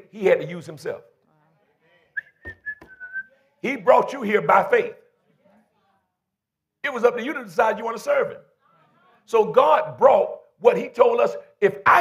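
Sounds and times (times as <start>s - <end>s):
thin whistling tone: 2.2s - 3.3s.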